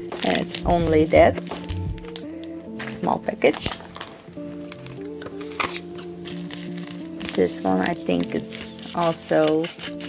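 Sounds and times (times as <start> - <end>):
plastic bag crinkling: 0.0 - 10.0
soft background music: 0.0 - 10.0.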